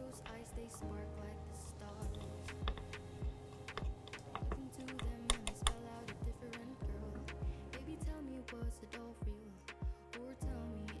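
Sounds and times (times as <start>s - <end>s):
wooden stick clicking on glass bowl: 2.0s - 5.8s.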